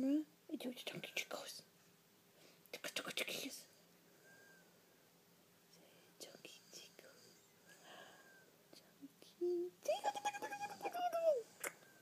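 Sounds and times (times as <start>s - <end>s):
soft whisper: 0.1s - 1.7s, 2.6s - 4.6s, 5.7s - 12.0s.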